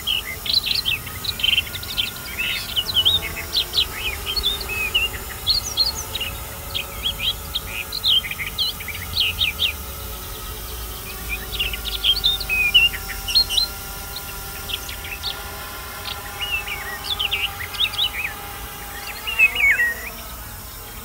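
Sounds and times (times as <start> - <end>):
faint steady hum: 0.0 - 21.0
small birds singing: 0.0 - 21.0.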